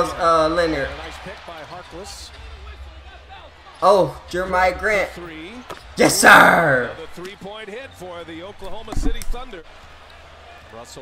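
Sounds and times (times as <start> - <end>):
commentator talking: 3.8 - 5.2, 6.0 - 7.3
single thud: 8.8 - 9.5.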